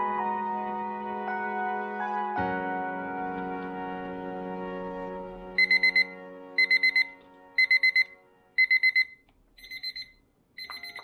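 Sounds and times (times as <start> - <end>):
digital timer beeping: 5.6 - 11.0.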